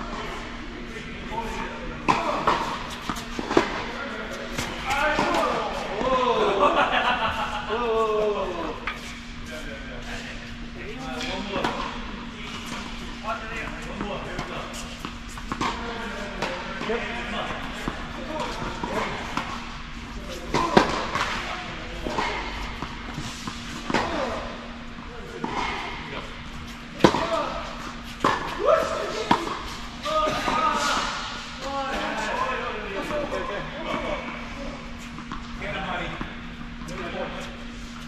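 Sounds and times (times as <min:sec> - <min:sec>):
steady low hum: 0:00.0 - 0:38.0
tennis balls struck by racquets: 0:20.3 - 0:24.6, 0:25.4 - 0:31.4.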